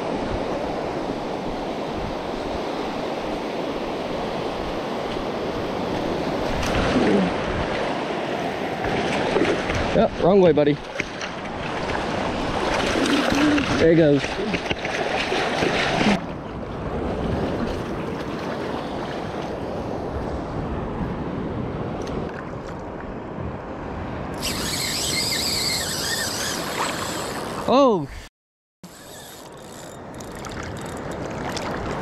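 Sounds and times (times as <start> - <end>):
surf washing around legs: 4.6 - 16.4, 29.2 - 32.0.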